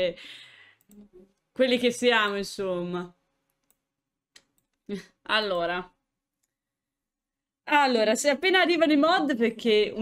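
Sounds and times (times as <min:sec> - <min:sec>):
woman speaking: 0:01.6 - 0:03.2, 0:04.9 - 0:06.0, 0:07.7 - 0:10.0.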